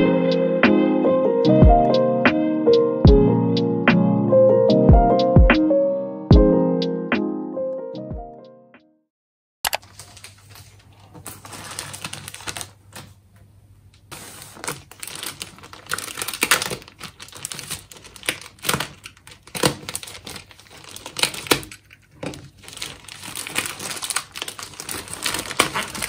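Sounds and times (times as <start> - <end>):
plastic mailer crinkling: 9.7 - 13.2, 14.1 - 26.0.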